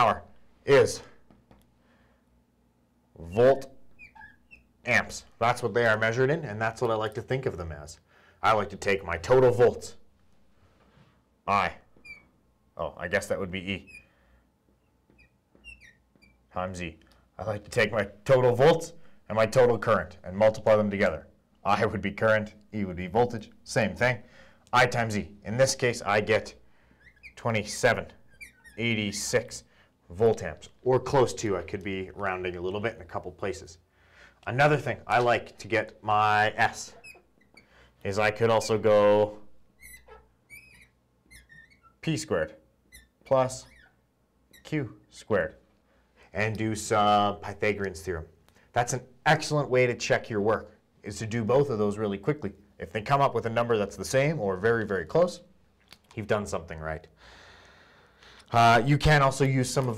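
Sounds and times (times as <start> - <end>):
marker squeaking on glass: 3.2 - 5.1, 11.8 - 12.4, 13.6 - 16.6, 26.8 - 29.1, 36.2 - 42.2, 42.8 - 44.8.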